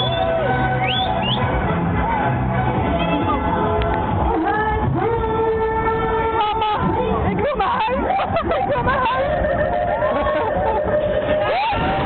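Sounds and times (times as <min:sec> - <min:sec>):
loud fairground ride music: 0:00.0 - 0:12.0.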